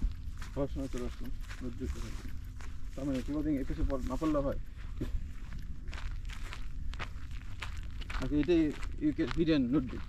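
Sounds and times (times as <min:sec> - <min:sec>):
footsteps on dirt path: 0:00.0 - 0:10.0
wind rumble on microphone: 0:00.0 - 0:10.0.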